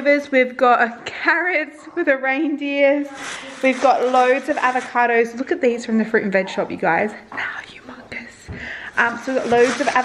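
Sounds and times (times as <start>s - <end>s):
woman whispering: 7.1s - 8.4s.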